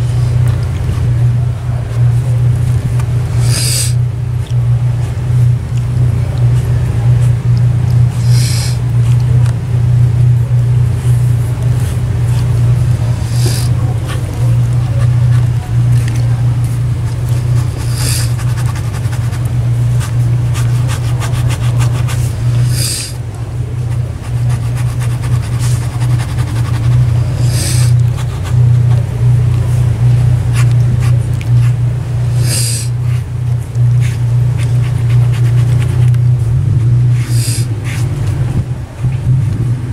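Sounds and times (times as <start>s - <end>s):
loud low hum: 0.0s - 39.9s
short high hiss: 3.3s - 4.0s, 8.1s - 8.8s, 13.1s - 13.8s, 17.6s - 18.8s, 22.1s - 23.2s, 27.3s - 28.0s, 32.3s - 33.2s, 37.2s - 37.7s.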